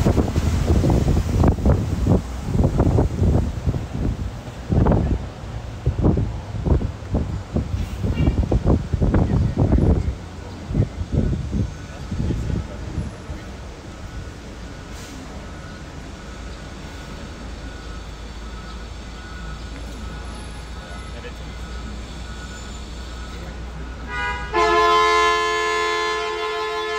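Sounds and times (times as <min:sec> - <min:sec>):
bus moving: 0:00.0 - 0:26.9
low rumble of city traffic: 0:00.0 - 0:26.9.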